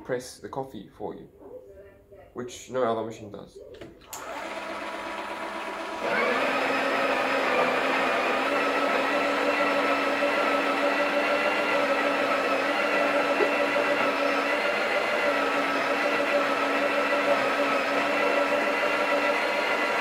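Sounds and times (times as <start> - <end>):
coffee grinder whining: 4.1 - 20.0.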